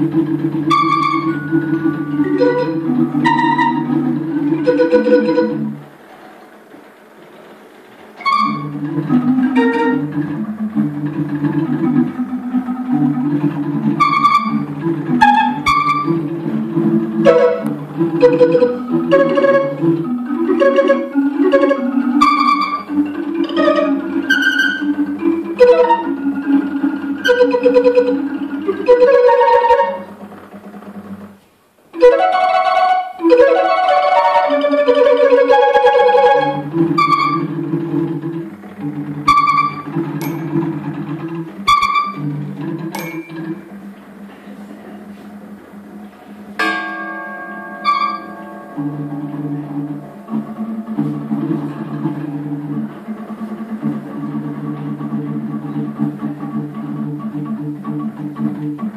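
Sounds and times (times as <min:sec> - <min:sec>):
barrel organ low notes: 0:00.0 - 0:06.6, 0:07.4 - 0:31.4, 0:32.0 - 0:58.9
carillon bell-like notes: 0:40.2 - 0:40.8, 0:42.9 - 0:43.7, 0:46.6 - 0:50.6.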